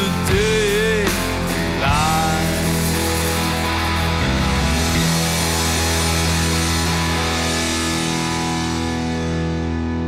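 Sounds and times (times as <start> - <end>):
grunge rock band instrumental: 0.0 - 10.0.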